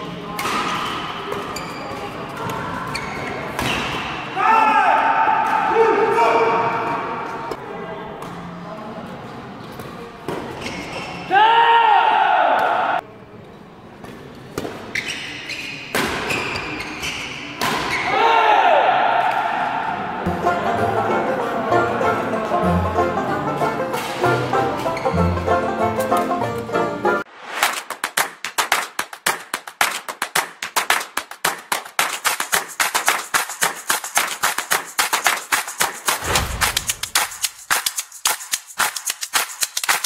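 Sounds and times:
music: 20.3 - 27.3
sharp cracks: 27.5 - 40.0.

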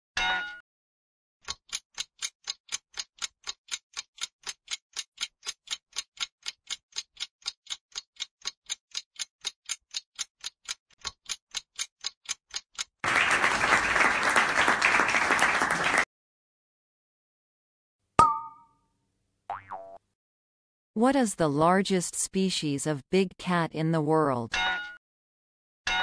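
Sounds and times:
countdown timer ticking: 1.4 - 13.0
recorded applause: 13.0 - 16.1.

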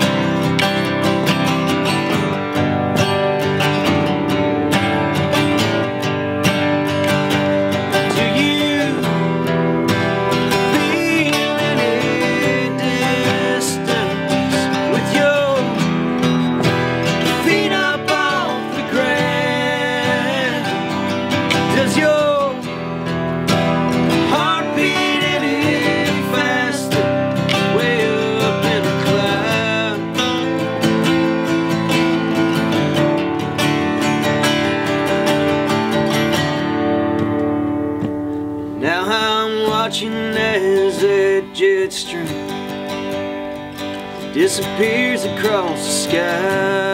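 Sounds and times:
acoustic guitars strummed: 0.0 - 46.9
two voices singing in harmony: 7.9 - 9.8, 10.4 - 22.8, 24.0 - 30.6, 44.4 - 46.9.

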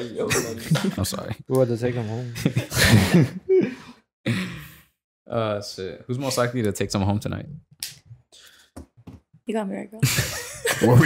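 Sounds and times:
men laughing: 0.0 - 4.5, 10.0 - 11.0.

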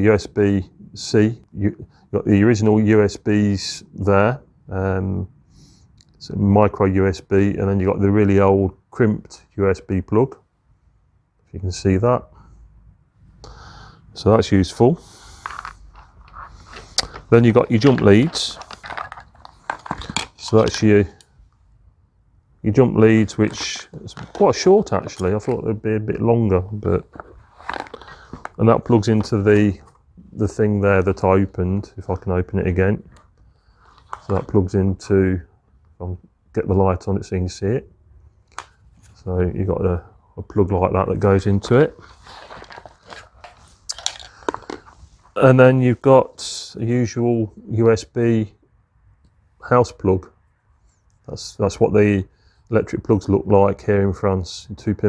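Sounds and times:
cables rustling and scraping: 14.6 - 21.6, 23.0 - 32.3, 33.1 - 34.7, 41.4 - 45.6.

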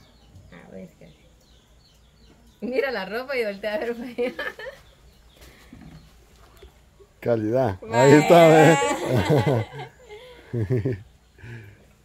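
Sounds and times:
faint bird chirps: 0.0 - 8.9.

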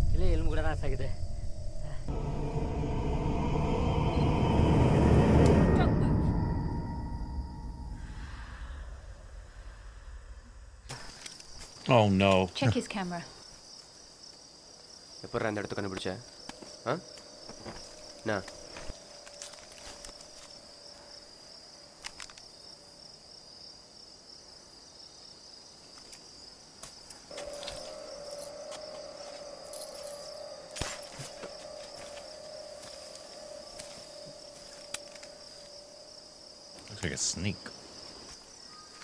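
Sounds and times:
steady low hum: 0.0 - 10.9
crickets chirping: 0.0 - 39.0.

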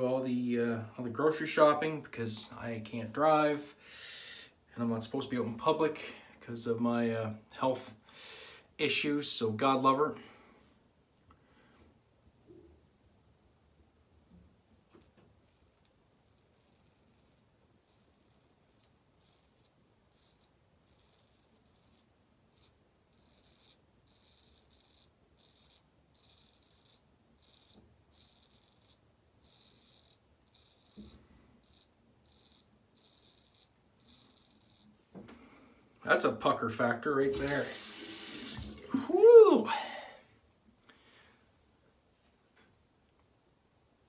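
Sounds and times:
razor scraping stubble: 14.9 - 35.0, 37.3 - 38.8.

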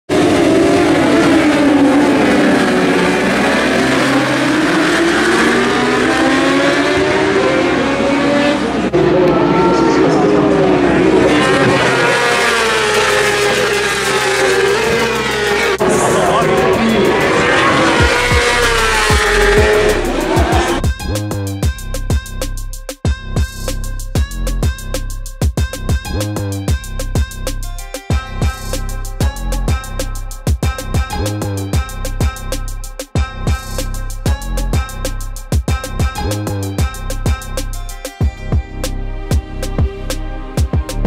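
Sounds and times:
motorbike engines revving: 0.1 - 20.8
low music beat: 11.4 - 41.0.

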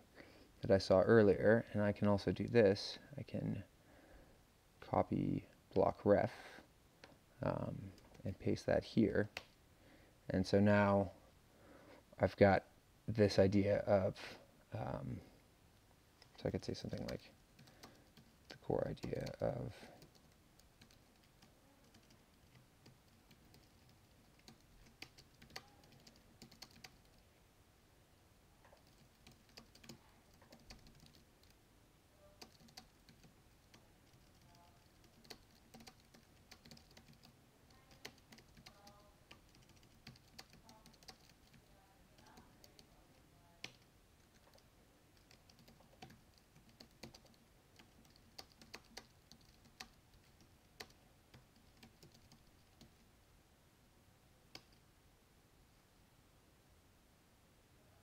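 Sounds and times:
faint keyboard typing: 7.0 - 8.6, 16.2 - 27.3, 28.6 - 31.6, 32.2 - 53.1, 54.5 - 54.9.

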